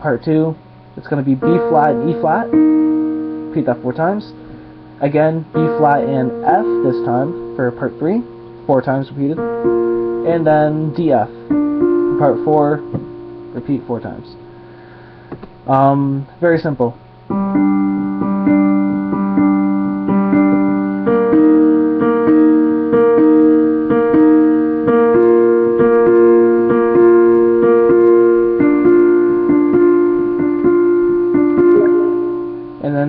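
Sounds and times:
slow piano two-note figures: 1.2s - 16.2s, 17.3s - 33.0s.

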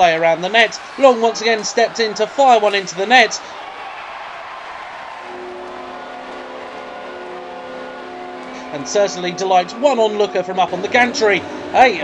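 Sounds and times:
arena crowd cheering: 0.0s - 12.0s
goal horn blast: 5.3s - 9.9s.

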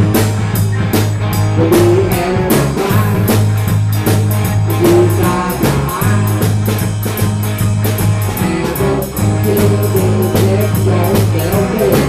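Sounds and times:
bass guitar low notes: 0.0s - 12.0s
drum kit with cymbals: 0.0s - 12.0s
electric guitar: 0.0s - 12.0s.

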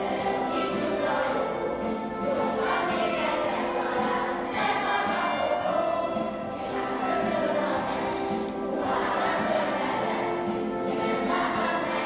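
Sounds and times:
children's choir singing: 0.0s - 12.0s.

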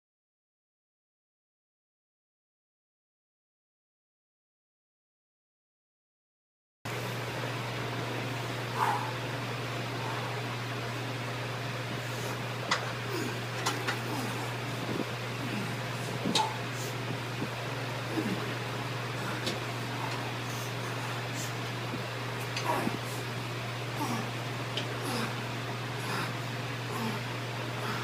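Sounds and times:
ventilation hum: 6.9s - 28.0s.

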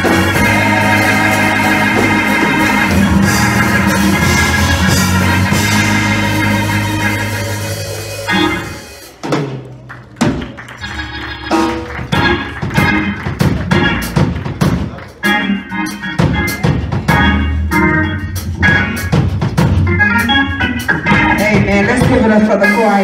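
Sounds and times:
bass line: 0.0s - 9.2s, 16.0s - 22.9s
drum beat: 0.0s - 10.8s, 11.4s - 15.0s, 16.2s - 17.4s, 18.8s - 20.0s, 21.0s - 23.0s
organ playing chords: 0.0s - 23.0s.

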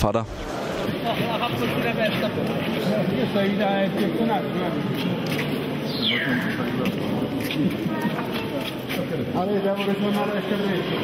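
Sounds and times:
outdoor background noise: 0.0s - 11.0s
people talking indistinctly: 0.0s - 11.0s.

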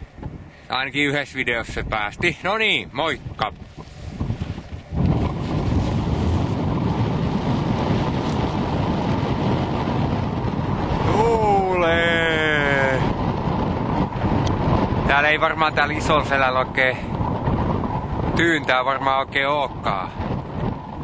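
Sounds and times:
wind buffeting microphone: 0.0s - 21.0s
man's drawn-out voice: 11.0s - 13.1s.

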